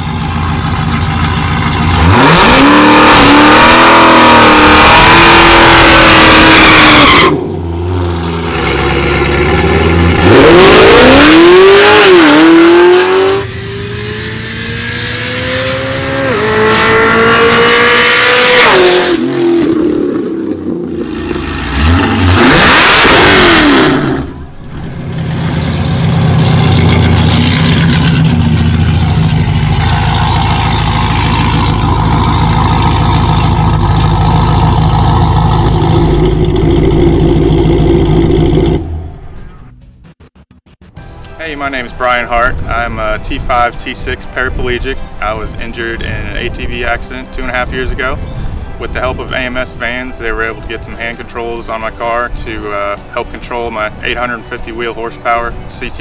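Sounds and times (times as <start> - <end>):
car engine revving at full throttle: 0.0 - 39.1.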